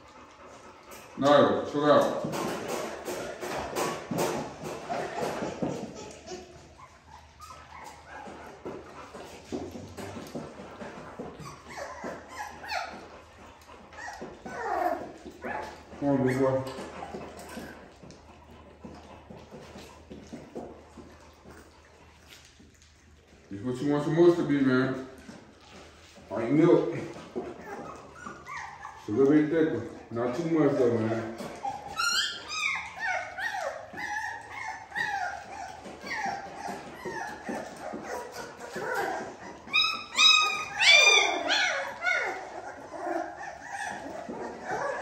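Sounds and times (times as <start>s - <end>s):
puppies lapping and slurping: 0.0s - 45.0s
puppies whimpering and yipping: 0.0s - 45.0s.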